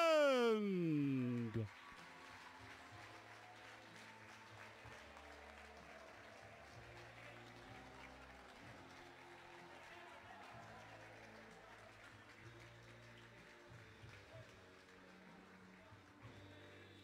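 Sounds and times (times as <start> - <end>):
distant applause: 0.0 - 7.4.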